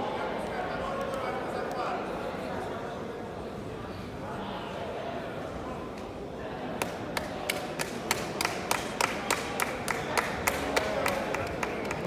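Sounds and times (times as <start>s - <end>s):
crowd murmuring in a hall: 0.0s - 12.0s
hand clapping: 6.8s - 12.0s.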